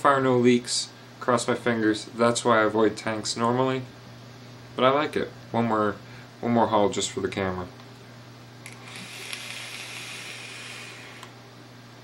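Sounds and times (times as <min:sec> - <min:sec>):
hiss of air through vape tank: 0:08.7 - 0:11.3.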